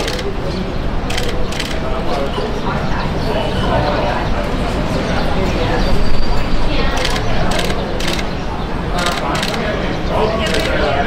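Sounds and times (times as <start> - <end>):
crowd chatter: 0.0 - 11.0
camera shutters clicking: 1.1 - 1.8, 7.0 - 8.3, 9.0 - 9.6, 10.4 - 10.8.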